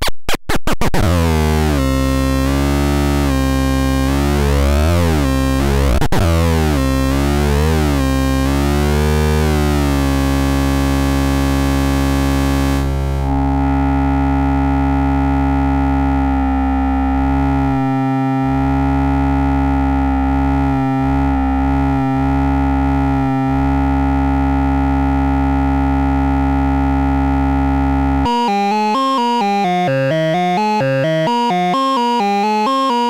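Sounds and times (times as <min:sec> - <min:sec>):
synthesizer drone: 0:01.0 - 0:33.0.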